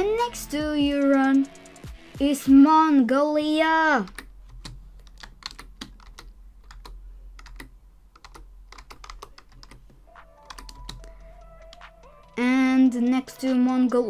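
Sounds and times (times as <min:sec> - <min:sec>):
keyboard typing: 0:04.0 - 0:14.0.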